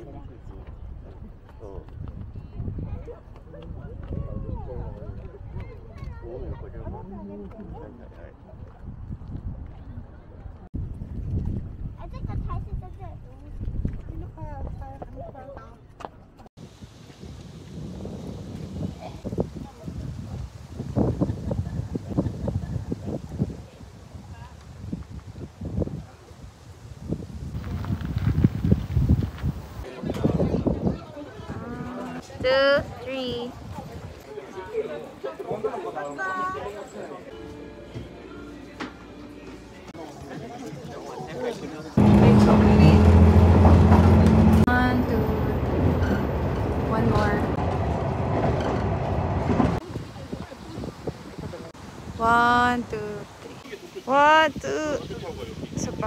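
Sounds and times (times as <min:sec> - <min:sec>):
wind buffeting microphone: 0:00.0 - 0:15.7, 0:16.6 - 0:34.3, 0:42.0 - 0:53.6, 0:54.3 - 0:56.0
moving train rumble and hum: 0:42.0 - 0:49.8.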